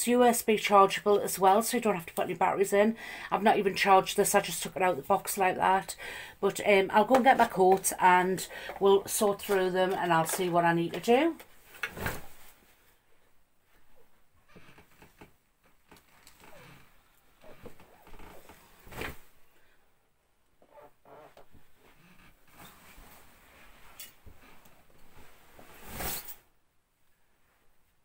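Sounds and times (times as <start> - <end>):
fabric rustling: 9.2 - 19.6, 20.7 - 26.4.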